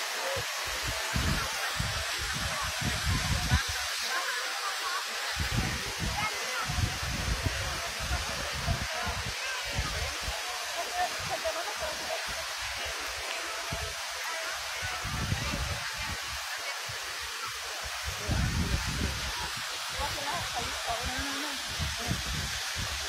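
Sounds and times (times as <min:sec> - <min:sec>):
fountain water rushing: 0:00.0 - 0:23.0
wind rumbling on microphone: 0:00.7 - 0:03.9, 0:05.4 - 0:10.4, 0:14.8 - 0:17.2, 0:17.9 - 0:23.0.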